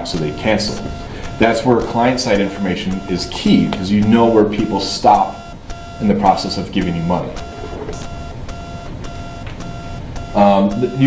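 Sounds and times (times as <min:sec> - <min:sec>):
faint clicks: 0:00.0 - 0:10.9
electrical hum: 0:00.0 - 0:11.0.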